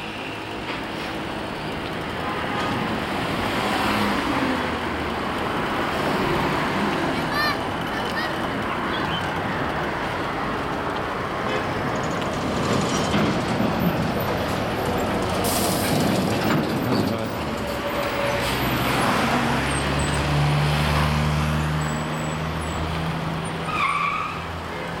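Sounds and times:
cars driving along street: 0:00.0 - 0:25.0.

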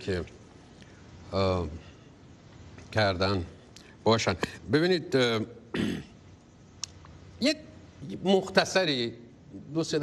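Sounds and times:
man speaking: 0:02.9 - 0:05.6, 0:07.4 - 0:10.0
throat clearing: 0:05.7 - 0:06.2.

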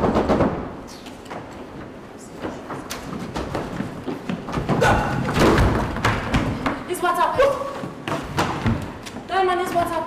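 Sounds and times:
thumps on wooden stage floor: 0:02.4 - 0:06.9, 0:07.8 - 0:10.0.

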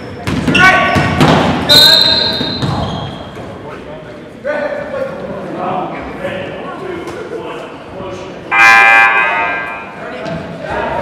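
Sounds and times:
ball bouncing: 0:00.1 - 0:01.7, 0:02.3 - 0:03.1
high held tone: 0:08.5 - 0:10.0.

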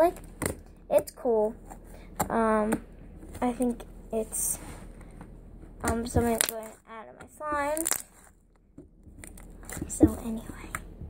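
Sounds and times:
slime clicking and popping: 0:07.7 - 0:08.0.

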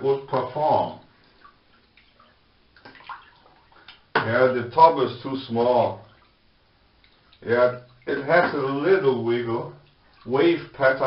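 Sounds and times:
water drips and gurgles: 0:00.0 - 0:11.0
water splash: 0:01.2 - 0:04.4.

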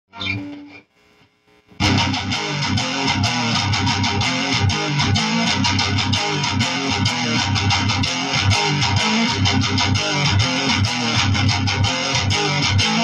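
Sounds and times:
electric guitar riff: 0:00.1 - 0:00.8, 0:01.8 - 0:13.0.

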